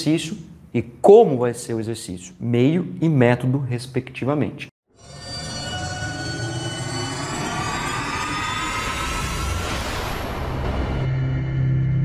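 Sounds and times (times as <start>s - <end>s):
cinematic riser whoosh: 5.2s - 12.0s
low rumble: 6.0s - 12.0s.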